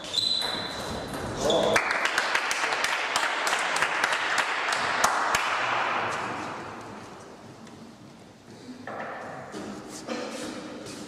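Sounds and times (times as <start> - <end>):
spectators clapping and cheering: 1.7 - 6.0.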